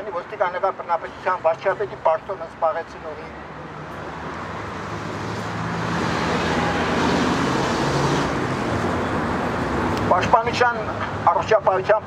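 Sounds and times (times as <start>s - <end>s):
vehicle passing close by: 3.8s - 9.9s.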